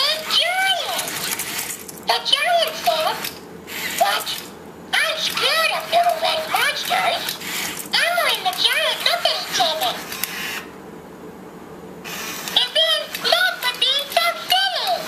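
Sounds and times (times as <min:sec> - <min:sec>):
robot toy talking high-pitched: 0:00.0 - 0:01.2, 0:02.1 - 0:03.3, 0:04.0 - 0:10.0, 0:12.5 - 0:15.0.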